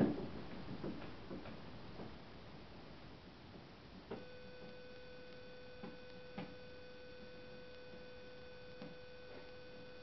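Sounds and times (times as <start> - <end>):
faint steady whine: 0.0 - 10.0.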